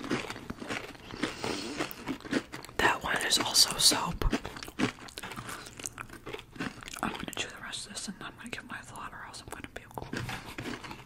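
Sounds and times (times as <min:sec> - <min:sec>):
wet mouth sounds: 0:00.0 - 0:07.6
chewing crunchy candy: 0:00.0 - 0:11.0.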